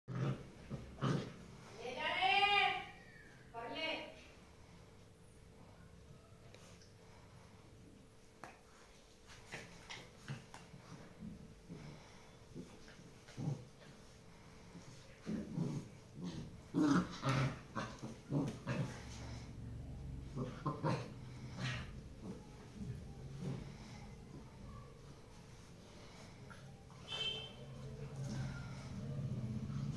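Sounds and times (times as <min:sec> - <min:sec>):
dogs grunting: 0:00.1 - 0:01.8, 0:10.2 - 0:24.8.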